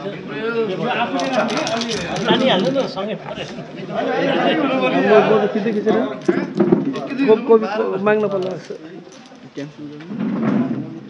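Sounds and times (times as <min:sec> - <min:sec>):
men talking over one another: 0:00.0 - 0:11.0.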